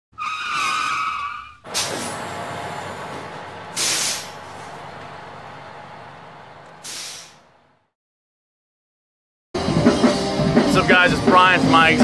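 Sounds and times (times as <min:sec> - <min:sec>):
bus brake squeal: 0:00.2 - 0:04.8, 0:06.8 - 0:07.4
bus engine rumble: 0:01.5 - 0:07.9
air brake hiss: 0:01.7 - 0:02.2, 0:03.7 - 0:04.5, 0:06.8 - 0:07.5.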